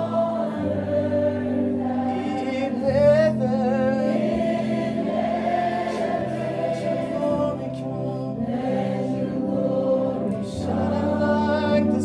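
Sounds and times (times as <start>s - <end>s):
voices singing: 0.0s - 12.0s.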